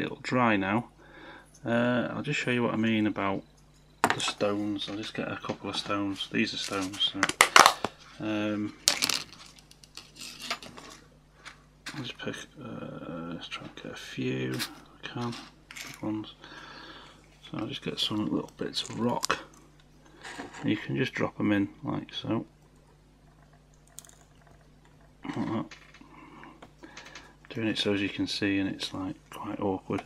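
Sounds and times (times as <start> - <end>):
small stones clinking in plastic tub: 8.9 - 10.9.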